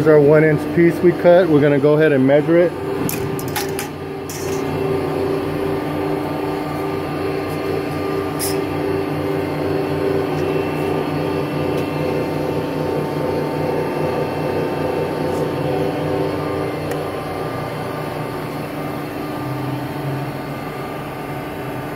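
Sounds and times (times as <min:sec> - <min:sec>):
hydraulic shear humming: 0:00.0 - 0:21.9.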